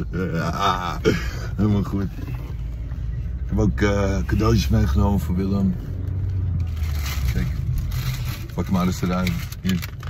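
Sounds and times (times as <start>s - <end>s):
car interior rumble: 0.0s - 10.0s
rustling and scraping: 6.6s - 10.0s.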